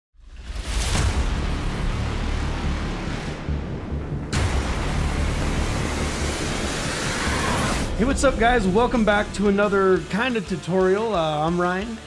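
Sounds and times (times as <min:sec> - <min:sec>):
deep bass rumble: 0:00.2 - 0:10.2
cinematic music: 0:00.2 - 0:12.0
sudden impact hit: 0:00.4 - 0:09.9.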